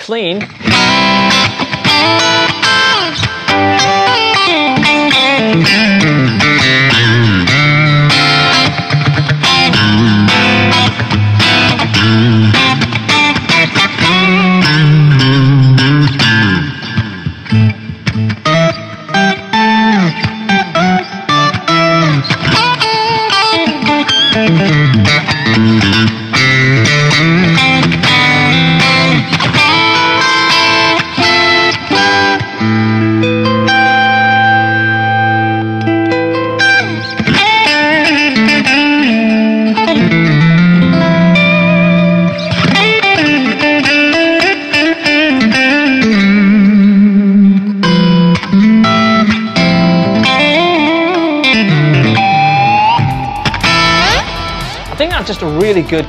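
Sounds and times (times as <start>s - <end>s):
electric guitar playing: 0.0s - 56.0s.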